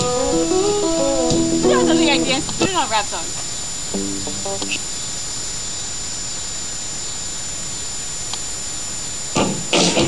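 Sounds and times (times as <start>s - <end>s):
background hiss: 0.0s - 10.0s
high-pitched whine: 0.0s - 10.0s.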